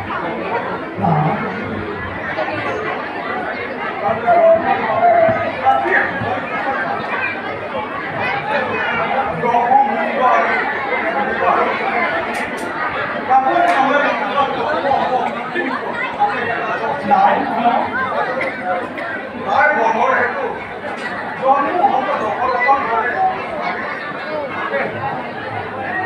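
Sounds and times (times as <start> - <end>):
voices talking over one another: 0.0 - 12.3.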